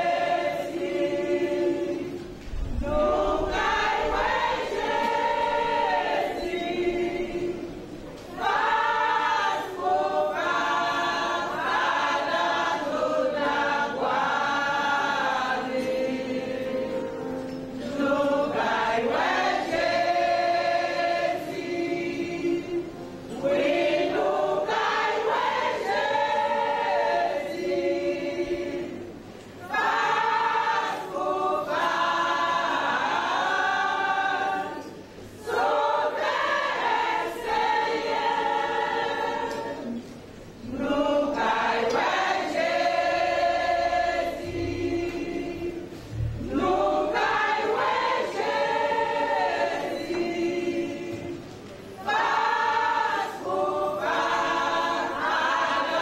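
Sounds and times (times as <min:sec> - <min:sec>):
church choir singing gospel: 0:00.0 - 0:56.0.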